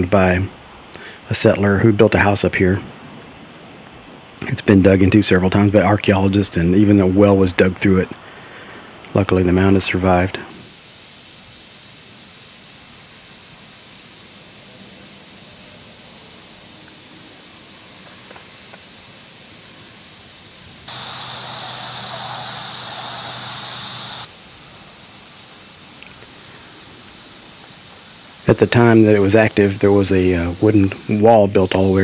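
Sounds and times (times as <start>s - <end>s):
outdoor ambience hiss: 0.0s - 32.0s
loud rushing noise with low hum: 20.8s - 24.3s.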